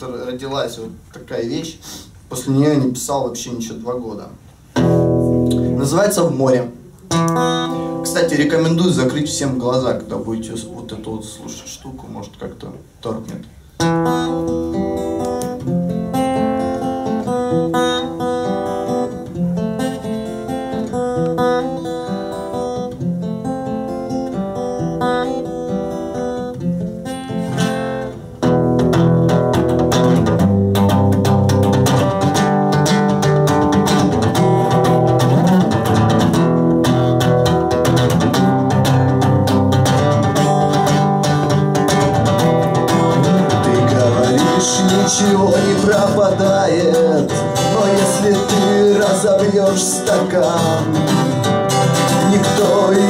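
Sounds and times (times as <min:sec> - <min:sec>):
acoustic guitar playing: 0:04.6 - 0:11.8, 0:13.7 - 0:53.0.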